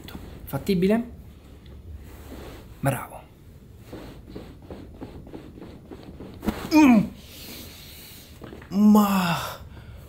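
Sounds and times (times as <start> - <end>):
cloth rustling: 1.3 - 8.7.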